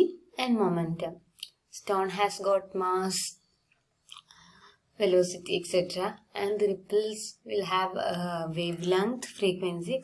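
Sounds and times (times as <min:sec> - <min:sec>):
woman speaking: 0:00.0 - 0:03.5, 0:05.0 - 0:10.0
soft breath: 0:04.2 - 0:05.0.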